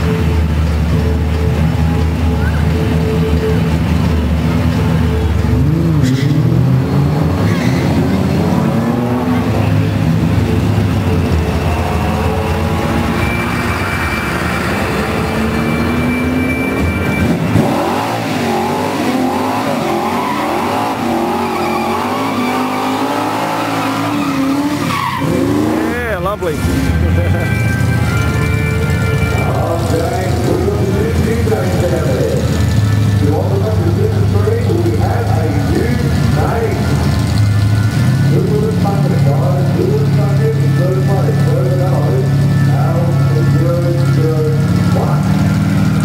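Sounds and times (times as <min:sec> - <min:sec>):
car engine revving: 0:00.0 - 0:46.0
tyres squealing: 0:06.0 - 0:46.0.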